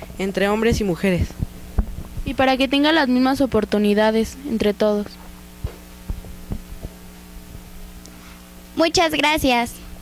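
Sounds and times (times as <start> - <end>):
microphone handling thumps: 0.0 - 8.5
electrical hum: 0.0 - 10.0.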